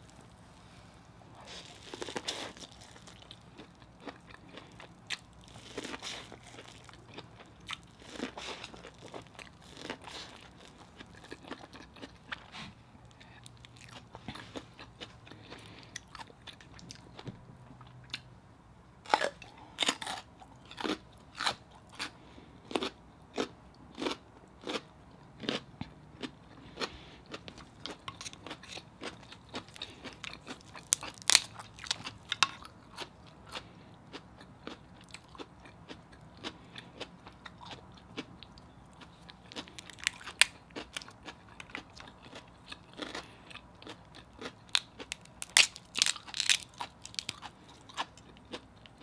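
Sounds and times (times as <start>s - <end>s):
person chewing: 1.3s - 18.3s, 19.1s - 49.0s.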